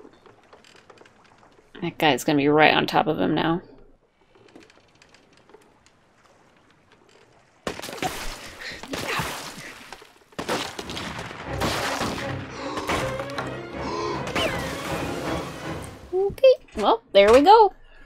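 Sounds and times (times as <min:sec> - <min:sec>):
dramatic music: 0:11.2 - 0:16.3
sound effects: 0:11.5 - 0:16.2.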